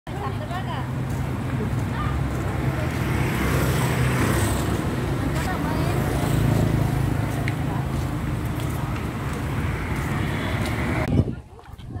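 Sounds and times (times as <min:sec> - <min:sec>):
low rumble of traffic: 0:00.1 - 0:12.0
people talking nearby: 0:00.1 - 0:12.0.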